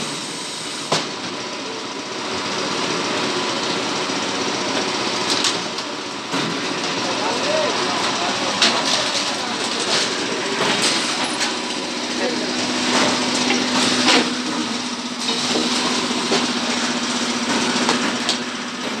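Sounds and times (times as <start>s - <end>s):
workers' voices: 1.0s - 19.0s
machine hum: 6.8s - 19.0s.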